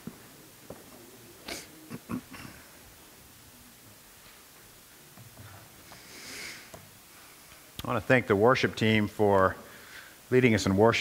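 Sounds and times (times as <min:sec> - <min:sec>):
person sniffing: 0:01.4 - 0:02.6, 0:05.9 - 0:06.7
person clearing throat: 0:01.4 - 0:02.7.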